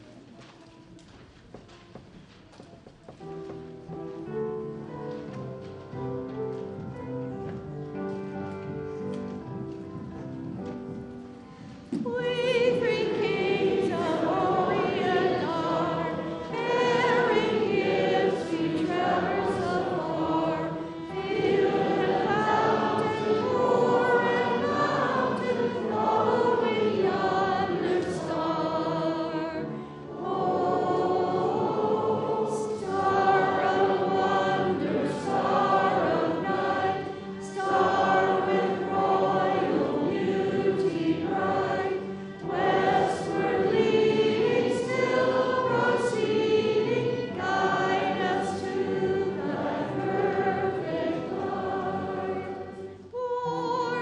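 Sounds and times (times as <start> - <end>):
congregation singing a hymn: 3.5 - 54.0.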